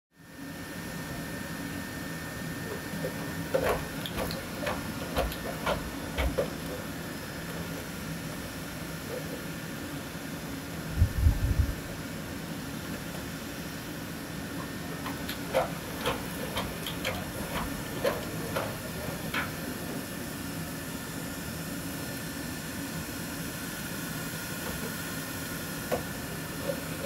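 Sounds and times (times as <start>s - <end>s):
ventilation room hum: 0.2s - 27.0s.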